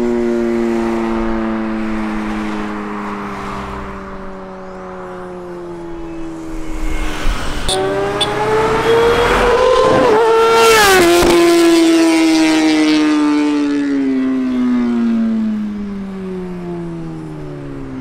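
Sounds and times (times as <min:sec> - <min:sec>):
motorcycle passing at high revs: 0:00.0 - 0:18.0.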